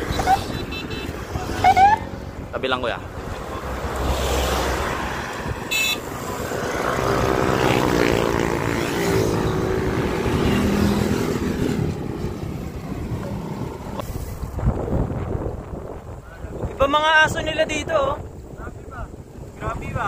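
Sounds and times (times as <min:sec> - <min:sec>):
vehicle engine passing by: 0:03.2 - 0:14.0.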